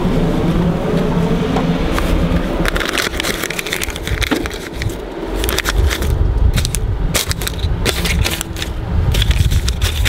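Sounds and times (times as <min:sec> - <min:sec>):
steady low hum: 0:00.0 - 0:10.0
paper bills crinkling in slot: 0:02.6 - 0:10.0.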